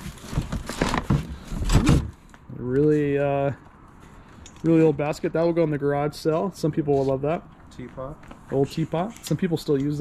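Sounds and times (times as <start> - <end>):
cardboard box rustling: 0.0 - 2.2.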